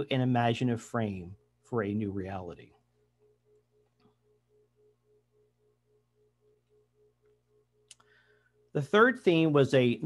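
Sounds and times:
faint pulsing beep tone: 2.9s - 9.5s.

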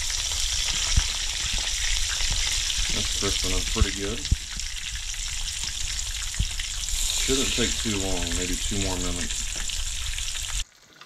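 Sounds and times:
fish sizzling in oil: 0.0s - 11.0s.

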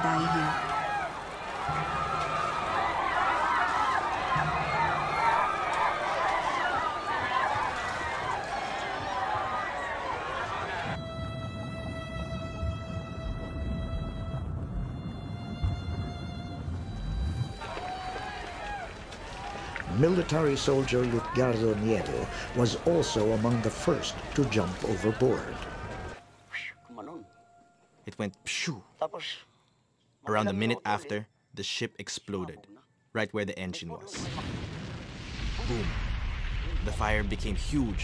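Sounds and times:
voices screaming and wailing: 0.0s - 11.0s, 17.5s - 27.0s
low rumble: 10.9s - 26.2s, 34.5s - 38.0s.

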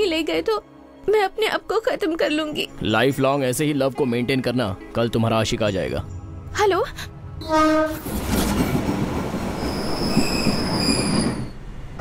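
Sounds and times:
train rumbling: 5.8s - 12.0s
train horn blast: 7.4s - 8.3s
wheel squeal: 9.5s - 11.6s.

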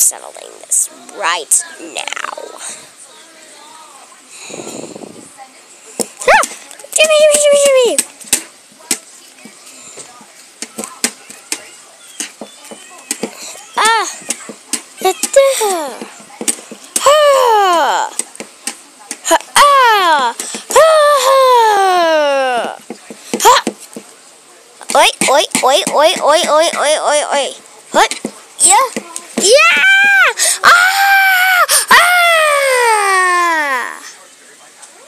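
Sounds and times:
toy doll knocking and tapping: 24.8s - 27.1s.

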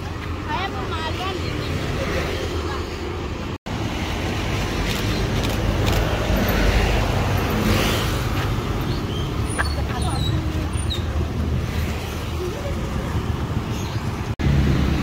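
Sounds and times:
road traffic rumble: 0.0s - 15.0s.

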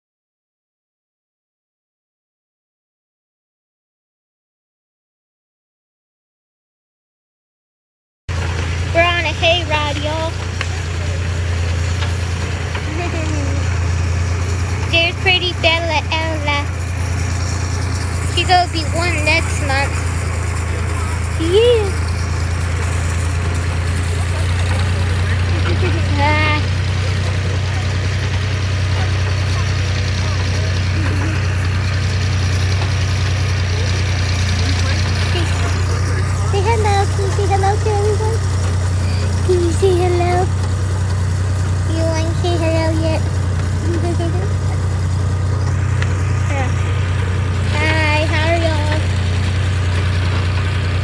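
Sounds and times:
vehicle engine droning: 8.3s - 51.0s
person speaking: 14.8s - 16.8s, 18.3s - 20.0s, 25.4s - 26.7s, 34.6s - 38.4s, 41.9s - 44.8s, 46.4s - 47.0s, 47.6s - 49.1s.

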